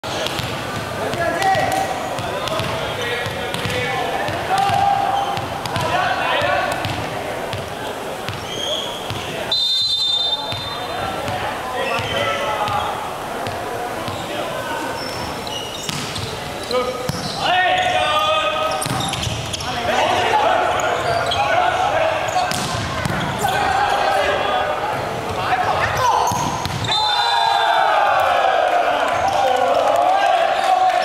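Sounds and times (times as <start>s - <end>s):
voices echoing in sports hall: 0.0s - 31.0s
volleyball bouncing on wooden floor: 1.5s - 7.6s, 26.3s - 26.8s.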